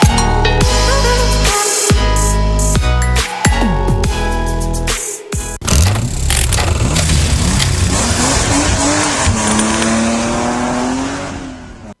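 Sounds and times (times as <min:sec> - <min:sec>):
car engine revving: 0:05.6 - 0:12.0
tyre and road noise: 0:05.6 - 0:12.0.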